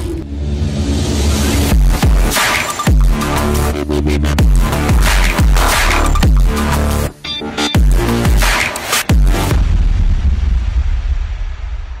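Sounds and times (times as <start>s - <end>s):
deep electronic bass rumble: 3.0s - 7.1s.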